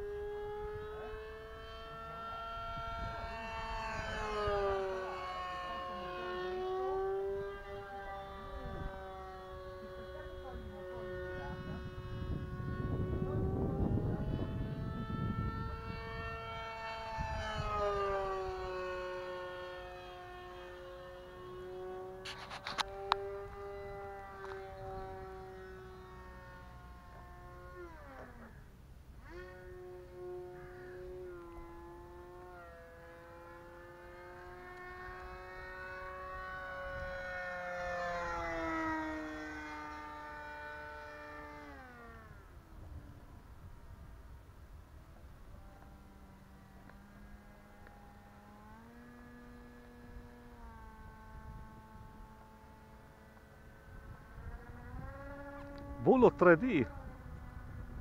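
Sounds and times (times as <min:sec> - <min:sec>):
low wind rumble: 0:00.0 - 0:33.6, 0:34.4 - 0:58.0
model plane motor whining: 0:00.0 - 0:58.0.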